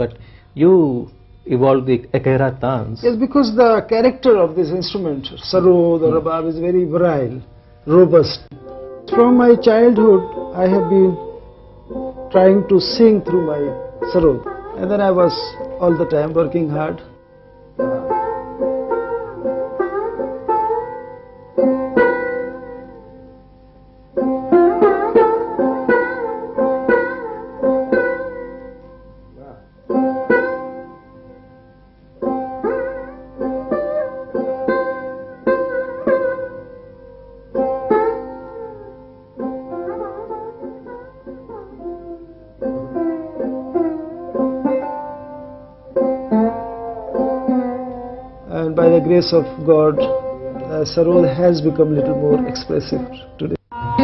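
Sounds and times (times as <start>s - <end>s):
plucked string instrument sliding notes: 0.0s - 54.0s.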